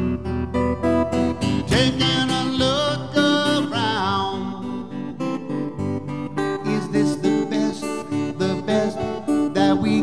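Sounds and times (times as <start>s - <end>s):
acoustic guitar strumming: 0.0s - 10.0s.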